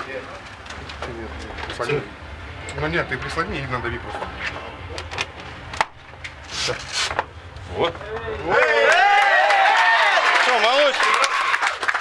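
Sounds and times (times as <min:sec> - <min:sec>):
men cheering and shouting: 0:07.9 - 0:11.9.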